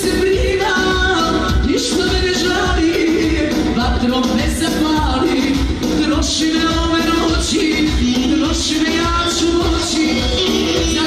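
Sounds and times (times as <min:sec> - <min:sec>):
steady bass beat: 0:00.0 - 0:11.0
woman singing into microphone: 0:00.0 - 0:11.0.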